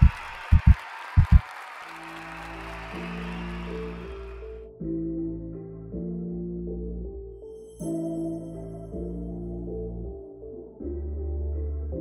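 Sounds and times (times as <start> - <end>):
calm ambient music: 1.9 - 12.0.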